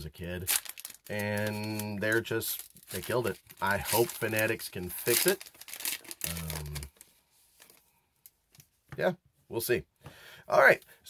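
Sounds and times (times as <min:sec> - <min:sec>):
foil wrapper being handled: 0:00.4 - 0:07.8.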